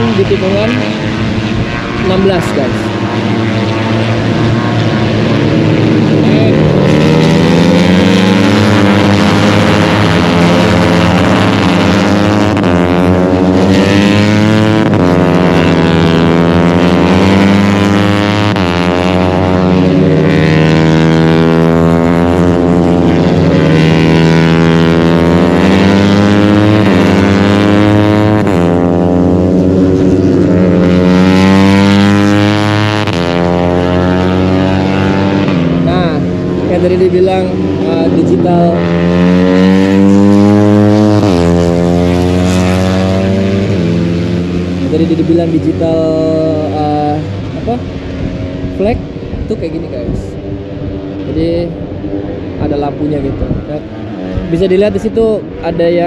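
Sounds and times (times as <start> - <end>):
racing motorcycle engines revving: 0.0 - 56.0.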